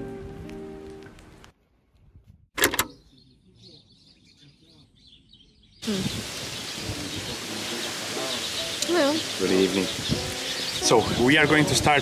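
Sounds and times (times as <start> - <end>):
bird-like chirps: 2.9 - 11.3
open-air background hiss: 5.0 - 12.0.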